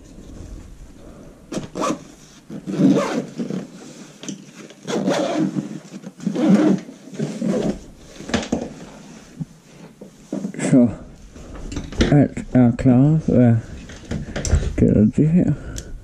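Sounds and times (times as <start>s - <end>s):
fabric bag rustling and scraping: 1.7s - 10.6s.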